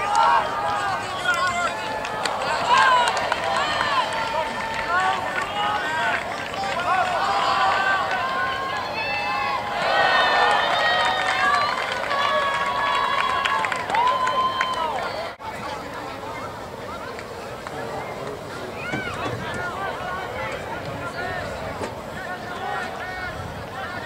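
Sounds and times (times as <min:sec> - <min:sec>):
many voices shouting: 0:00.0 - 0:15.5, 0:18.6 - 0:24.0.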